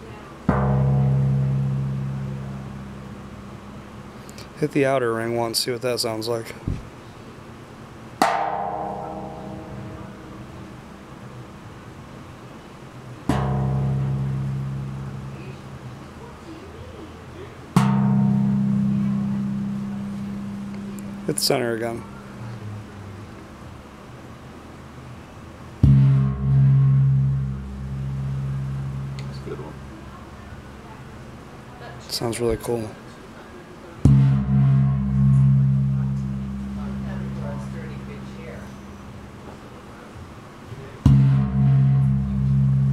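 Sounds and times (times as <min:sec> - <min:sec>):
brass gong ringing: 0:08.3 - 0:11.0, 0:25.8 - 0:30.4, 0:34.1 - 0:39.4, 0:41.1 - 0:42.9.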